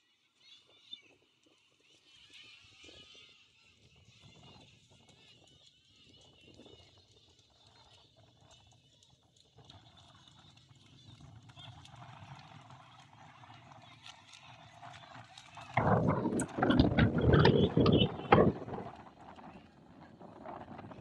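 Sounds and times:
wind buffeting microphone: 15.6 - 21.0.

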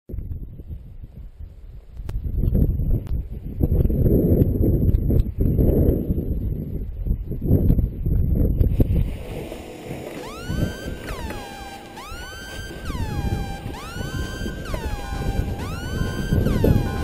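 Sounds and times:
gusting wind buffeting microphone: 0.1 - 17.0.

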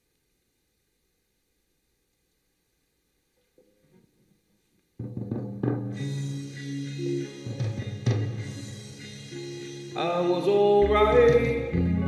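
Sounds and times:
drums: 5.0 - 12.0
acoustic-electric guitar: 6.1 - 12.0
steady bass notes: 10.2 - 12.0.

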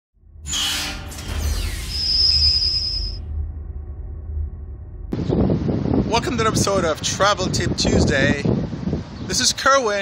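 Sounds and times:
low rumble: 0.2 - 9.2
high ringing tone: 0.4 - 5.4
wind buffeting microphone: 4.5 - 10.0.

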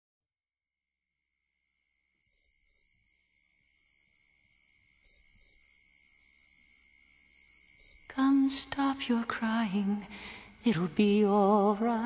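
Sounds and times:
faint steady hiss: 1.2 - 12.0.

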